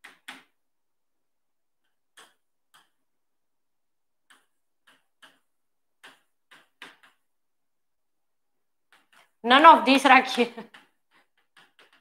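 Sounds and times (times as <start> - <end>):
chalk tapping on blackboard: 4.2 - 7.3, 10.7 - 12.0.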